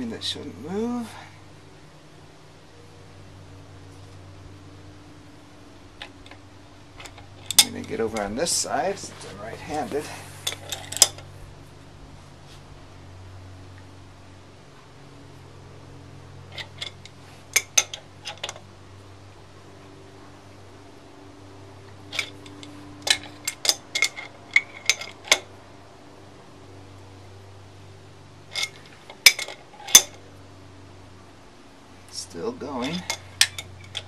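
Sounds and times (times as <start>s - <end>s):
low steady hum: 0.0s - 34.0s.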